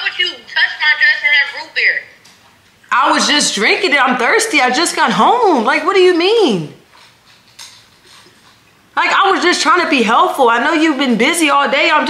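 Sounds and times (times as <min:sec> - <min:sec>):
woman talking: 0:02.9 - 0:06.8, 0:09.0 - 0:12.0.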